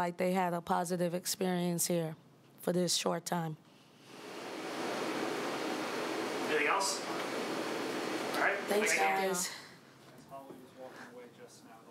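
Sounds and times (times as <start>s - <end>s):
room noise hiss: 3.6s - 11.9s.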